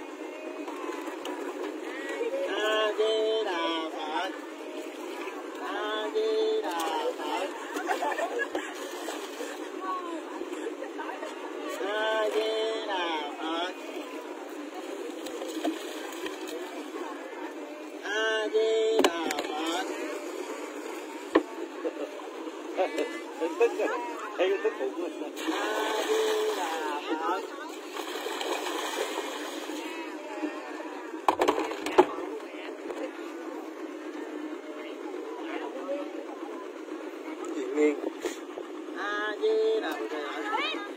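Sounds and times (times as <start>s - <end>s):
people talking: 0.0s - 40.9s
steady background hum: 0.0s - 40.9s
water splashing into river: 25.3s - 30.2s.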